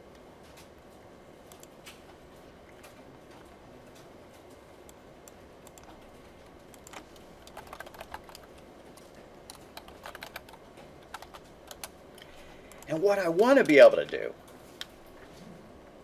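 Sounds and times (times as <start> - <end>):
keyboard typing: 1.5 - 2.0, 4.8 - 13.0.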